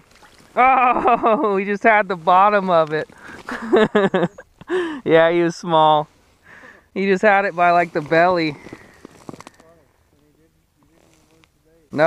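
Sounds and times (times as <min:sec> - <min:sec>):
man chuckling: 0:00.6 - 0:01.6, 0:03.5 - 0:05.0.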